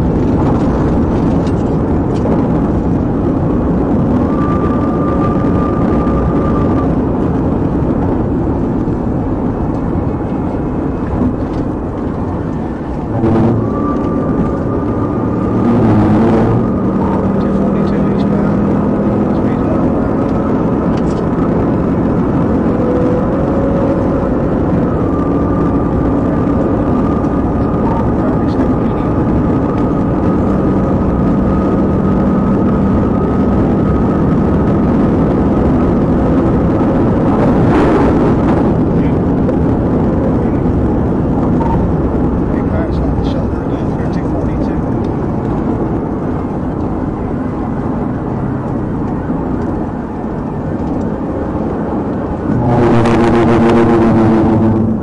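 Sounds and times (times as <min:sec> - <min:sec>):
car engine tyre and wind noise: 0:00.0 - 0:55.0.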